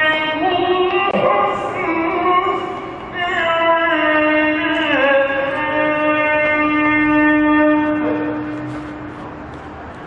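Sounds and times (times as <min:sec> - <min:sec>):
man chanting recitation: 0:00.0 - 0:09.1.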